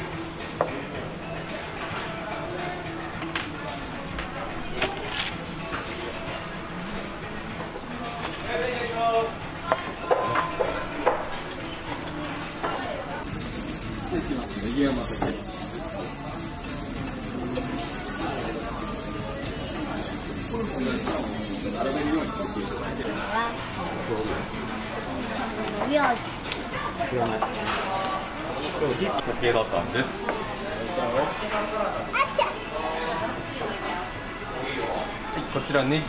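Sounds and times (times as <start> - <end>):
background music: 0.0 - 36.0
restaurant chatter: 0.0 - 36.0
meat sizzling on a grill: 13.2 - 33.1.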